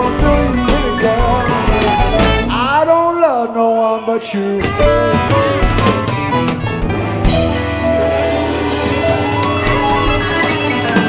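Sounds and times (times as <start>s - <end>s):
live rock band playing: 0.0s - 11.0s.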